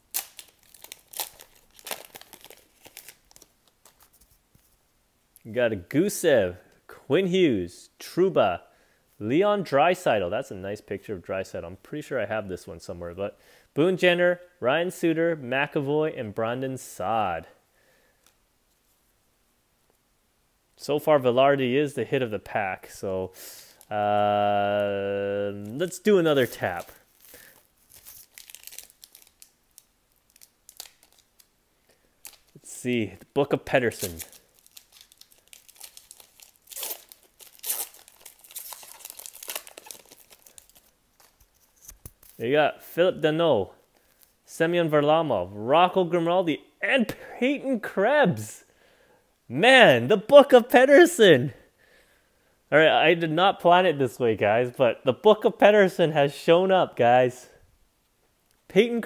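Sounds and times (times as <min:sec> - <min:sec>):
card pack wrapper crinkling: 0:00.0 - 0:04.4, 0:25.5 - 0:42.4
faint handling of cards: 0:00.1 - 0:05.5, 0:22.9 - 0:42.6, 0:43.7 - 0:44.5.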